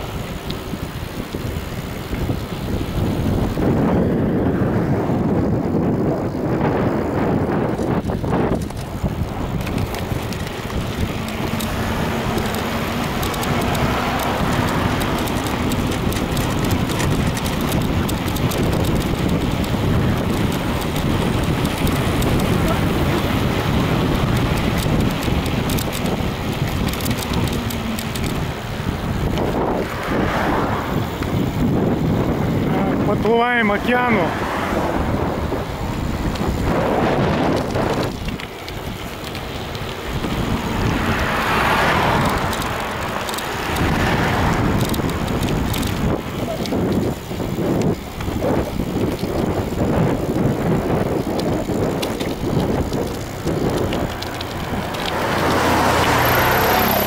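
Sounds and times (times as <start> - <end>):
rolling road noise: 0.0 - 57.0
wind rush on microphone: 0.0 - 57.0.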